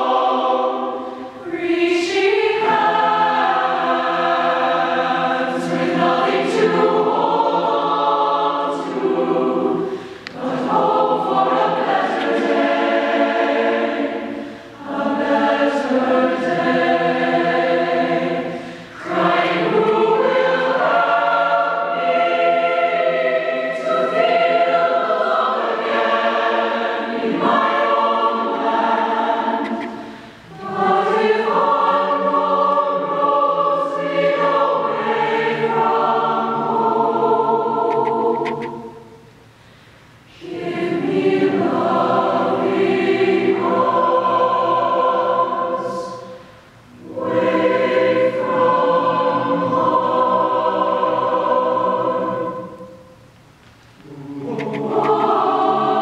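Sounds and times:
mixed choir singing held chords: 0.0 - 53.4, 54.0 - 56.0.

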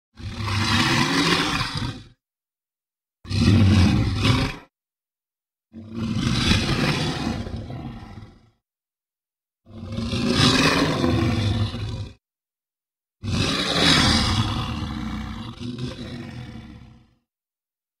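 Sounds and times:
dinosaur roar: 0.1 - 2.2, 3.2 - 4.7, 5.7 - 8.6, 9.7 - 12.2, 13.2 - 17.2.

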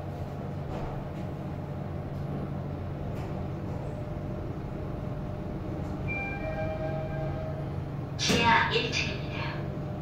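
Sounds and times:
elevator humming: 0.2 - 10.0
elevator arrival chime: 6.0 - 8.2.

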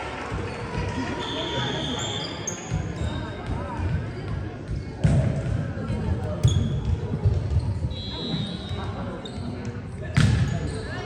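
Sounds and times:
sneaker squeaks on wooden floor: 6.4 - 6.9.

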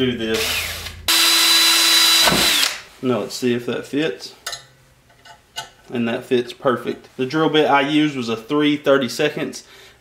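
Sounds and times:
cordless drill drilling: 0.3 - 2.8.

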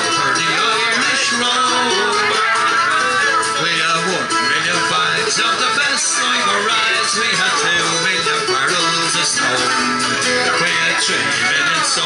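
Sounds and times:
acoustic guitars playing: 0.0 - 12.0
folk session music: 0.0 - 12.0.

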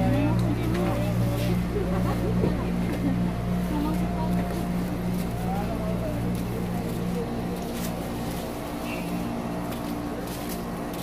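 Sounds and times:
low mechanical hum: 0.0 - 11.0
people talking faintly: 0.0 - 11.0.

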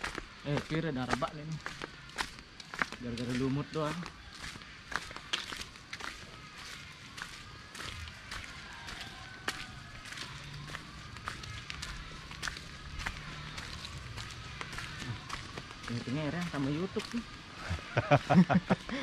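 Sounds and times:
footsteps on dirt path: 0.0 - 19.0.

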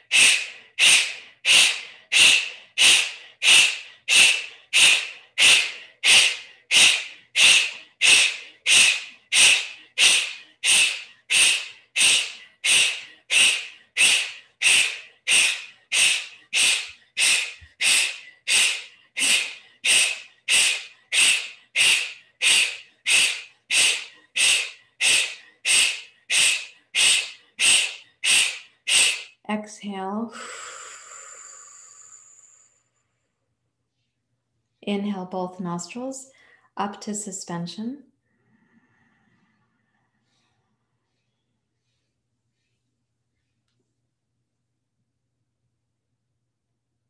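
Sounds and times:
forceful breaths through nose: 0.0 - 29.4, 30.3 - 33.0, 38.3 - 42.9.

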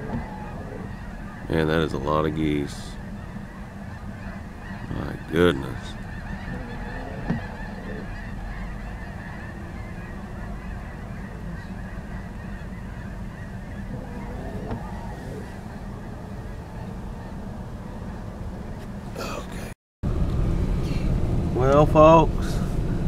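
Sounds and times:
flock of geese honking: 0.0 - 19.4
low rumble: 0.0 - 23.0.

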